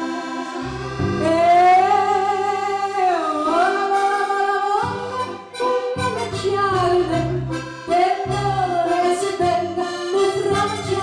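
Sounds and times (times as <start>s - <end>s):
accordion: 0.0s - 11.0s.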